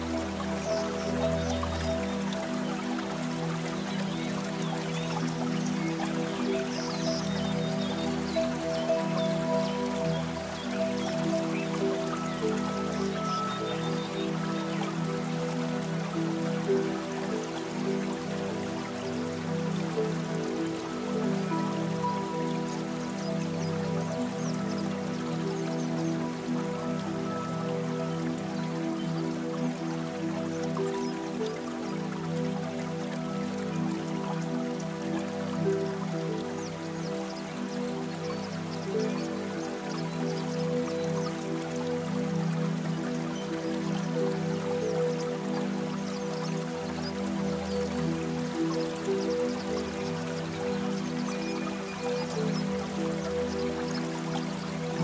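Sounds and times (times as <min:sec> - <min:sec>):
faint raindrops dripping: 0:00.0 - 0:55.0
soft slow piano music: 0:00.0 - 0:55.0.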